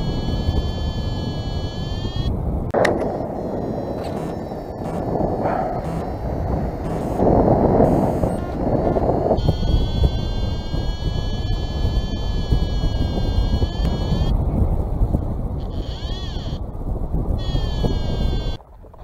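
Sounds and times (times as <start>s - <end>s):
high electronic tone: 0.0s - 14.3s, 15.6s - 16.6s
wind rushing over microphone: 0.0s - 19.0s.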